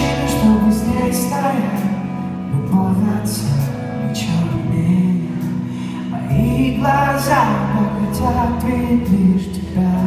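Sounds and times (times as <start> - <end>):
guitar chords: 0.0 - 10.0
keyboard chords: 0.0 - 10.0
person singing: 0.0 - 10.0.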